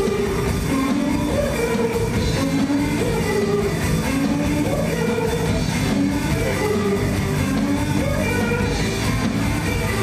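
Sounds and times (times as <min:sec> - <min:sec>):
drum kit: 0:00.0 - 0:10.0
electric guitars: 0:00.0 - 0:10.0.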